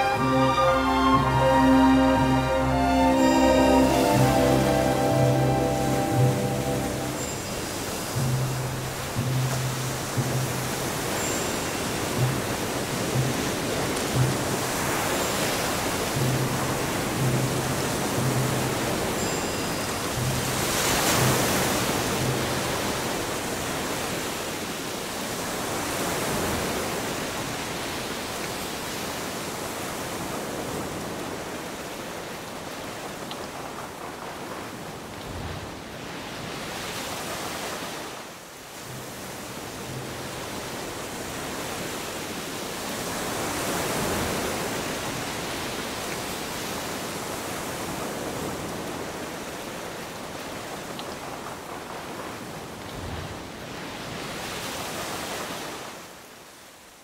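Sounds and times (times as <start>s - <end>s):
underwater surf rushing: 0.0s - 24.8s.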